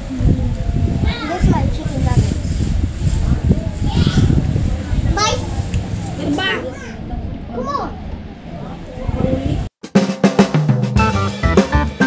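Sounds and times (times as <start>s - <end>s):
children's high-pitched calls: 0.4s - 2.4s, 3.6s - 5.6s, 6.2s - 9.2s.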